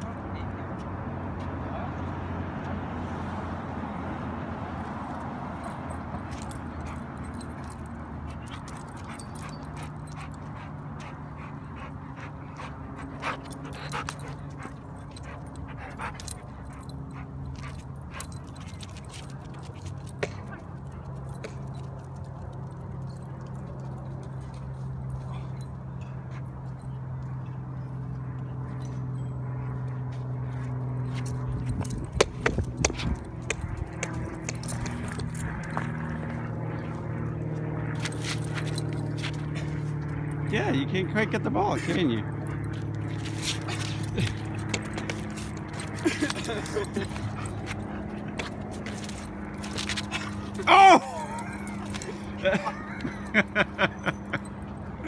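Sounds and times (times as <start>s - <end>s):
steady low hum: 5.6s - 55.0s.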